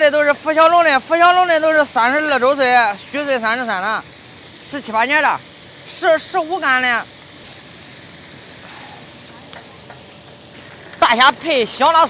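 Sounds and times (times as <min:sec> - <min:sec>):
hot oil sizzling in a wok: 0:00.0 - 0:12.0.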